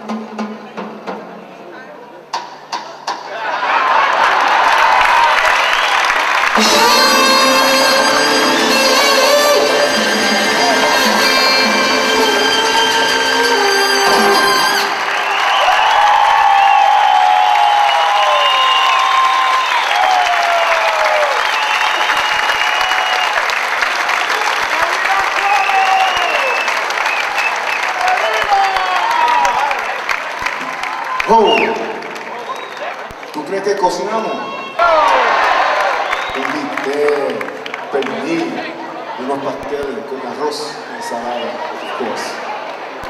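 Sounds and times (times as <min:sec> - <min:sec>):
audience applause and cheering: 0:03.3 - 0:43.0
salsa band chord: 0:06.5 - 0:15.2.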